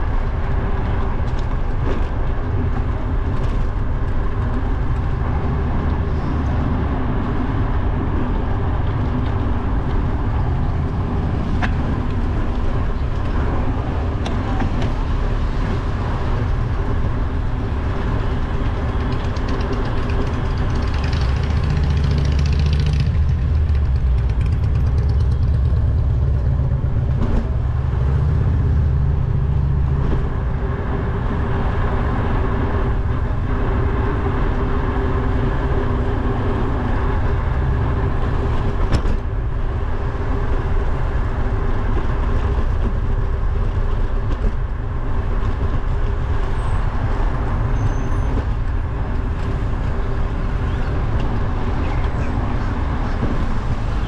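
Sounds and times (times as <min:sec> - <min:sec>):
road and traffic noise: 0:00.0 - 0:54.0.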